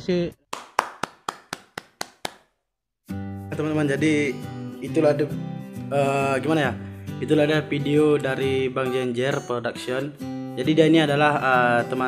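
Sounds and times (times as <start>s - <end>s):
person clapping hands: 0.4s - 2.6s.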